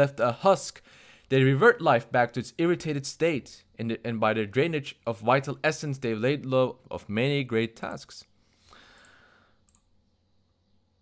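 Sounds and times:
faint click: 8.9s - 9.9s.

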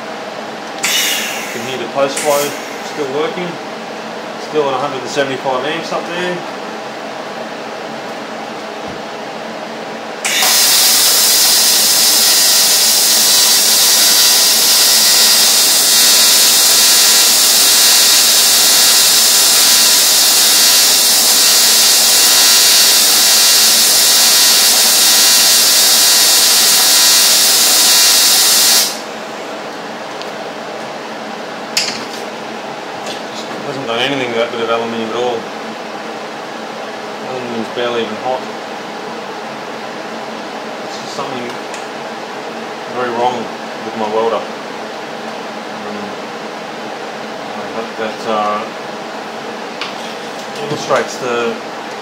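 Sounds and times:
welding arc buzzing hiss: 0.8s - 3.2s, 10.2s - 29.4s.

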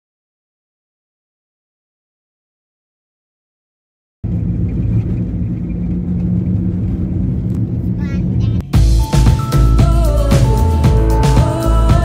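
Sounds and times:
car engine and road rumble: 4.2s - 12.0s
loud music: 8.7s - 12.0s.

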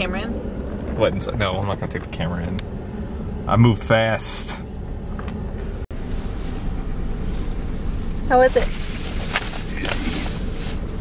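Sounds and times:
steady low rumble: 0.0s - 11.0s
plastic bags crinkling: 6.0s - 11.0s.

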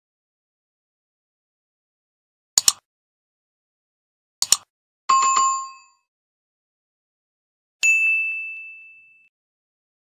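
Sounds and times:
bright ding: 7.8s - 9.3s.

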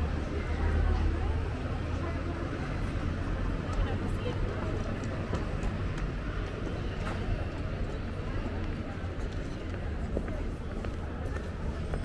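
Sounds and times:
hubbub of voices: 0.0s - 12.0s
low street rumble: 0.0s - 12.0s.

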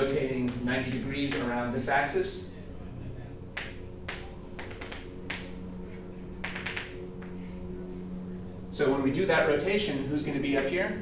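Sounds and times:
chalk tapping on blackboard: 3.6s - 5.4s.

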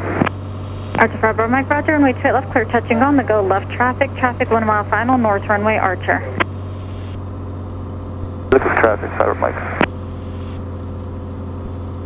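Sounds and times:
airplane engine droning: 0.0s - 12.0s.

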